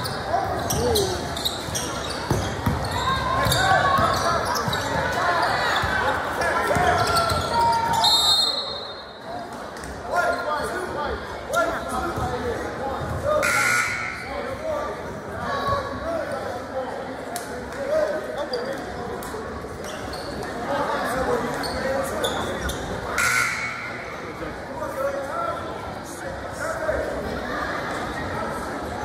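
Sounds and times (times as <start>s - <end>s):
voices in echoing hall: 0.0s - 29.0s
short high whistle: 8.0s - 9.0s.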